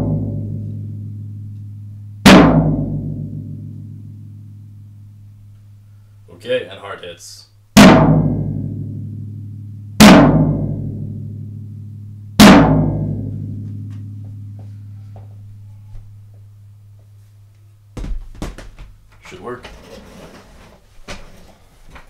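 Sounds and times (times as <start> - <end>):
floor tom drum hits: 0.0 - 0.6, 2.2 - 3.7, 7.8 - 9.2, 10.0 - 11.2, 12.4 - 14.5, 18.0 - 19.0.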